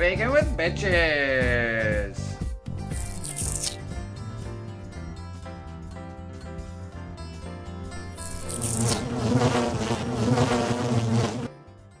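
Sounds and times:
loud insect-like buzzing: 2.9s - 3.8s, 8.1s - 11.5s.

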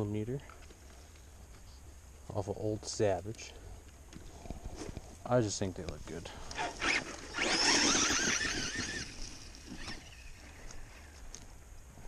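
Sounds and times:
toy truck electric motor whining: 6.5s - 10.8s.

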